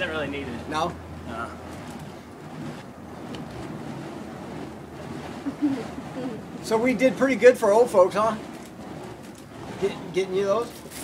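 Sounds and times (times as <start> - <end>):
whoosh of swung fire poi: 1.1 - 11.0.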